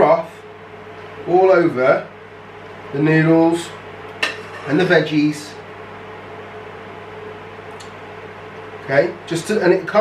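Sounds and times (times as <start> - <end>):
appliance hum and hiss: 0.0 - 10.0.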